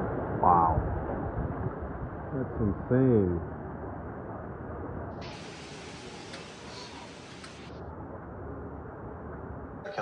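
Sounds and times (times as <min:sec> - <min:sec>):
hurricane wind and rain: 0:00.0 - 0:09.8
bright hiss: 0:05.2 - 0:07.7.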